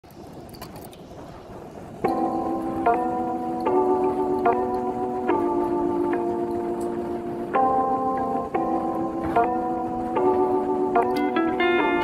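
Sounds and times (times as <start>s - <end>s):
bike rolling on asphalt: 0.0s - 12.0s.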